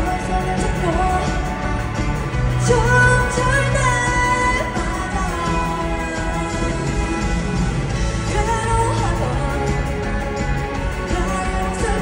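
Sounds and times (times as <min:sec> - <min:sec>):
woman singing into microphone: 0:00.0 - 0:01.8, 0:02.5 - 0:07.4, 0:08.2 - 0:12.0
live band with drums and guitars: 0:00.0 - 0:12.0.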